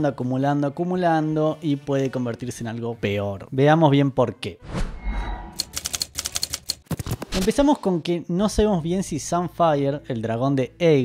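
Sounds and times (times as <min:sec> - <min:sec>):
typewriter keys clacking: 0:05.6 - 0:07.5.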